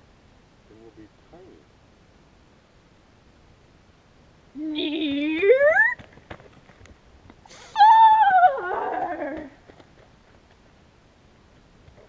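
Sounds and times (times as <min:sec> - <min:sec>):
high-pitched vocal cry: 0:04.6 - 0:06.0, 0:07.5 - 0:09.6.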